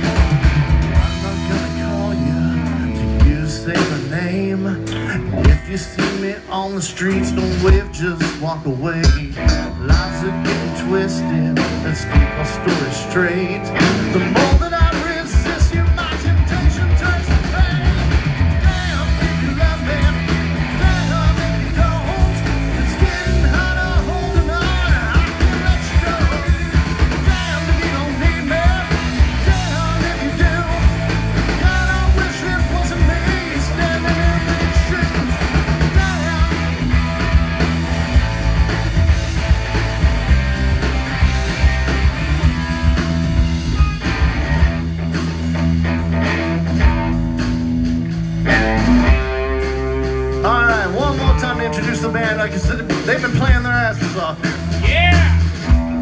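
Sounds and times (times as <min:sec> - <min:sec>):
bass guitar: 0:00.0 - 0:56.0
drum kit beat: 0:00.0 - 0:56.0
electric guitar: 0:00.0 - 0:56.0.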